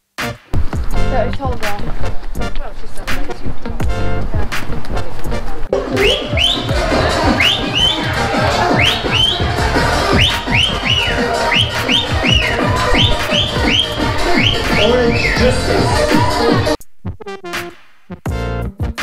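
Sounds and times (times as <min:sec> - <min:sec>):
whistle-like synth line: 0:05.8 - 0:16.7
kick drum: 0:18.2 - 0:19.0.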